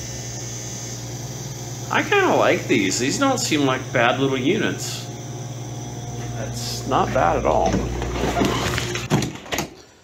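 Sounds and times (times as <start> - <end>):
cooler fans humming: 0.0 - 10.0.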